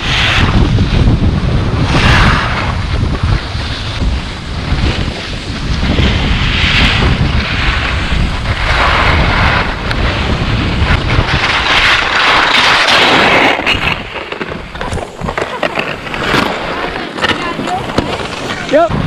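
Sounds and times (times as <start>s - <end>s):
skis scraping on snow: 0.0s - 19.0s
wind buffeting microphone: 0.0s - 19.0s.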